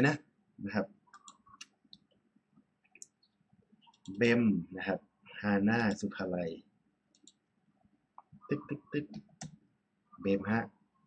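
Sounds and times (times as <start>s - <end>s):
computer mouse clicks: 1.1s - 2.1s, 2.9s - 4.2s, 7.1s - 7.4s.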